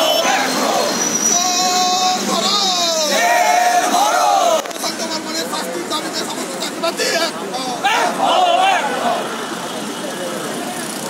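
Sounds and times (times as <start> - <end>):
people talking indistinctly: 0.0 - 11.0
road traffic rumble: 0.0 - 11.0.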